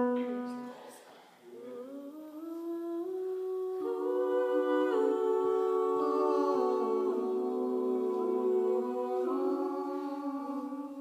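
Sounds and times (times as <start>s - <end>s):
voices humming chords: 1.6s - 11.0s.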